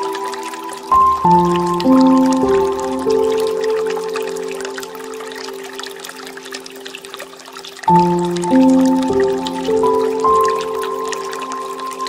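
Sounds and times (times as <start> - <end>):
calm piano music: 0.0 - 12.0
water trickling from fountain: 0.0 - 12.0.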